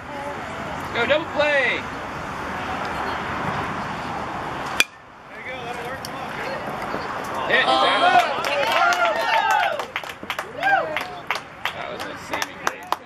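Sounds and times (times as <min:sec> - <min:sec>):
baseball bat hitting ball: 0:04.7 - 0:05.0
spectators shouting and cheering: 0:06.2 - 0:13.0.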